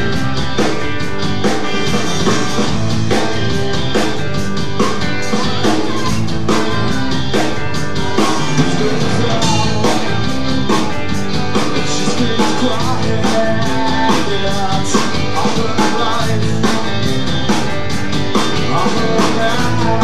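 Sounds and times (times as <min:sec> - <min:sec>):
drum kit steady beat: 0:00.0 - 0:20.0
electric bass: 0:00.0 - 0:20.0
electric guitars: 0:00.0 - 0:20.0.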